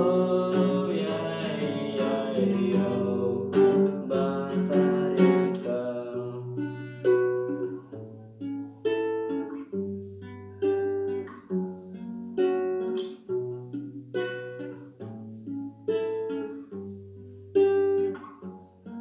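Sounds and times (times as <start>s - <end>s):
fingerstyle classical guitar: 0.0s - 19.0s.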